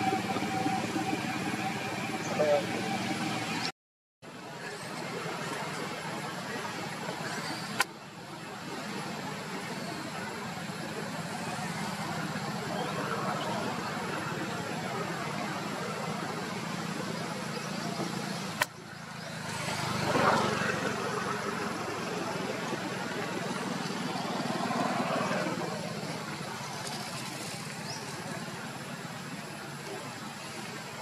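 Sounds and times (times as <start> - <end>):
traffic engine hum: 0.0 - 3.7, 4.3 - 31.0.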